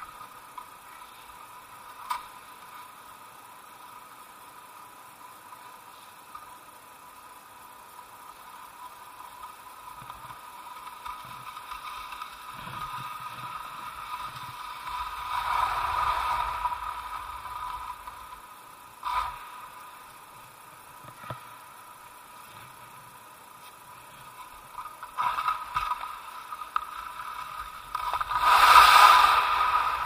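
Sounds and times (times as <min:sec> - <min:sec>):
steady high hum: 0:00.0 - 0:30.0
skis scraping icy snow: 0:08.2 - 0:20.0, 0:23.6 - 0:30.0.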